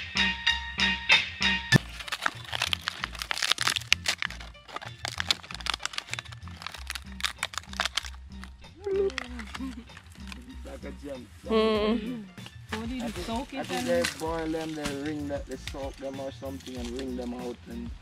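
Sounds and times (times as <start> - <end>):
dry plants crackling: 1.7 - 11.4, 12.4 - 17.4
plucked-string music: 1.7 - 17.5.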